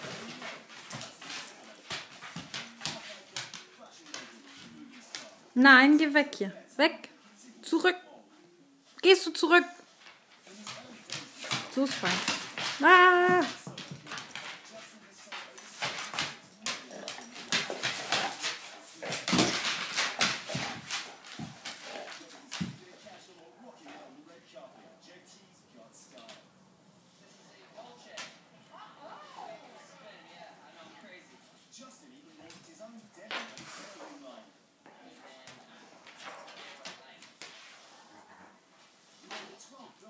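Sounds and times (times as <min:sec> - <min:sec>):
dogs scuffling: 0:00.0 - 0:06.1, 0:09.6 - 0:24.2, 0:32.2 - 0:40.0.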